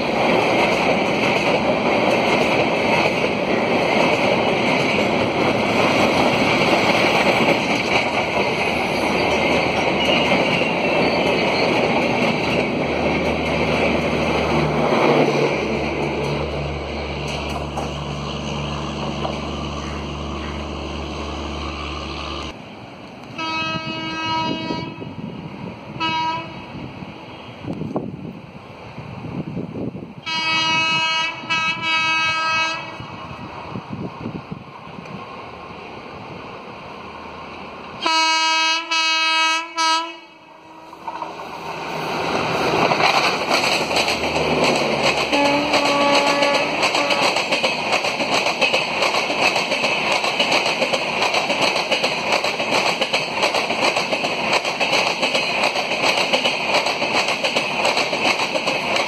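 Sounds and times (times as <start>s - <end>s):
train rumbling on bridge: 0.0s - 59.0s
distant locomotive horn: 23.3s - 25.2s, 26.0s - 26.7s, 30.2s - 33.2s, 38.0s - 41.2s, 45.3s - 47.4s.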